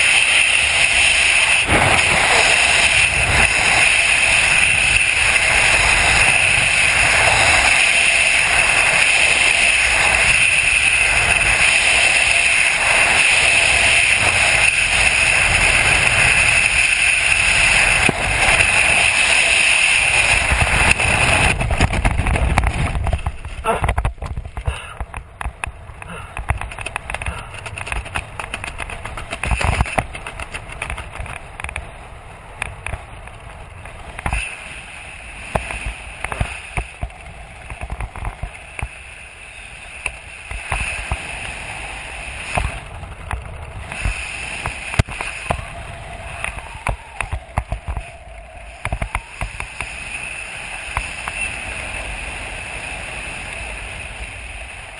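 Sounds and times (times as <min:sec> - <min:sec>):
airflow rushing over microphone: 0:00.0 - 0:54.9
canopy flapping in wind: 0:00.0 - 0:54.9.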